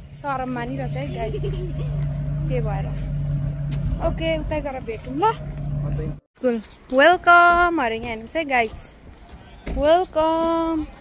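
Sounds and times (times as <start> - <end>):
low motor hum with rumble: 0.0 - 6.2
voices talking: 0.2 - 3.2, 4.0 - 11.0.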